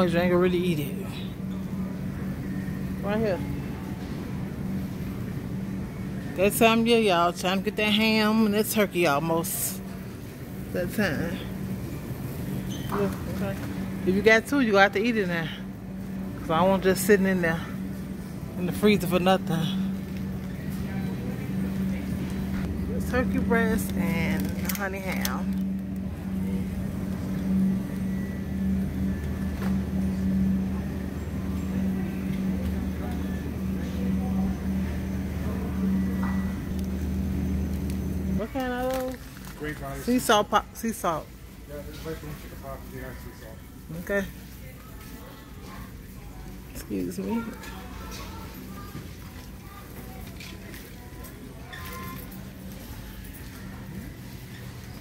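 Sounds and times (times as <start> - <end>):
steady low tones: 0.0 - 39.2
supermarket hum and rumble: 0.0 - 55.0.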